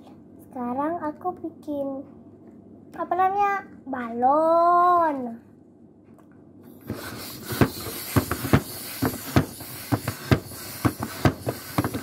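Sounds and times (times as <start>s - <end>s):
hand pump air hissing: 6.8s - 12.0s.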